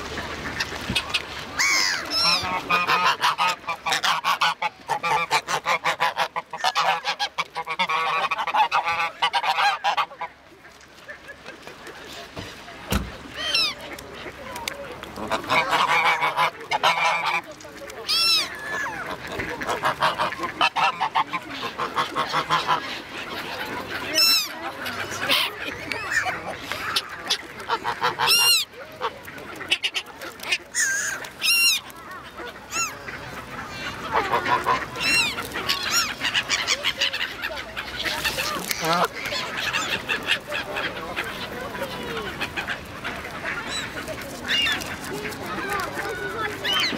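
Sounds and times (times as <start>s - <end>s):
geese honking: 0.0s - 10.7s, 15.0s - 46.9s.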